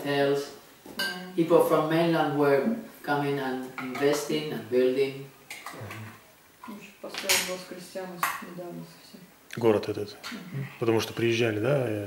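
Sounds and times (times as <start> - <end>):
tableware clinking: 1.0 - 1.3, 7.1 - 7.6
faint voice: 5.8 - 6.2.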